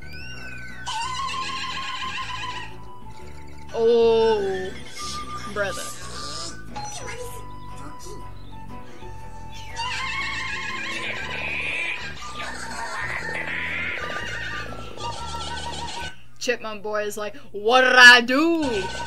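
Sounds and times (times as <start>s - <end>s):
cartoon background music: 0.0s - 16.2s, 18.5s - 19.0s.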